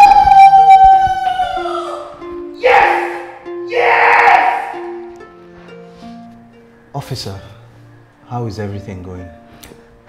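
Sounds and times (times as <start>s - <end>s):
background music of held notes: 0.0s - 10.0s
man yelling in triumph: 2.6s - 5.0s.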